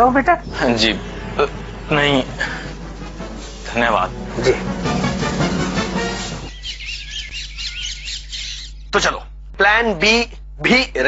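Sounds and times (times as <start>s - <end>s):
music: 0.4s - 6.6s
birds chirping: 0.4s - 9.2s.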